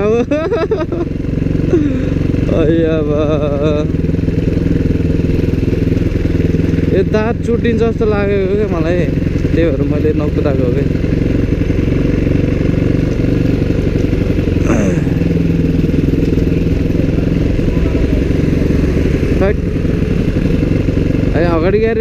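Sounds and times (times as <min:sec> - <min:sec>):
dirt bike engine running: 0:00.0 - 0:22.0.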